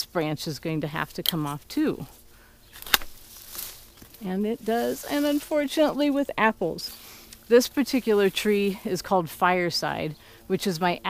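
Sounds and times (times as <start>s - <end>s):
leaves rustling: 0.0s - 11.0s
loppers snapping branch: 2.7s - 4.3s.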